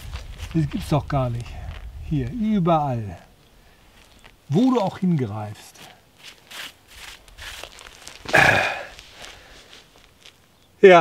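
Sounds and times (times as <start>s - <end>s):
man's rasping vocal sound: 8.3s - 8.9s.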